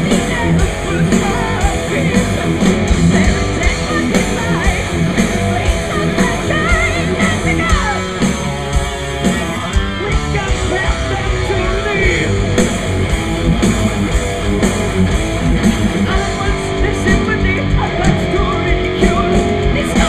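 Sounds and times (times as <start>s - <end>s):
bass guitar: 0.0s - 20.0s
drums: 0.0s - 20.0s
electric guitars: 0.0s - 20.0s.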